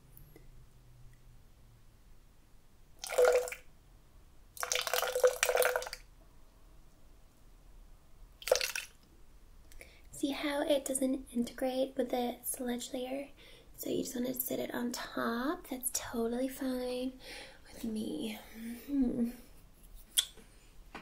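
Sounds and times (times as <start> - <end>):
juice pouring into plastic shaker: 3.0 - 3.6, 4.6 - 6.0, 8.4 - 9.0.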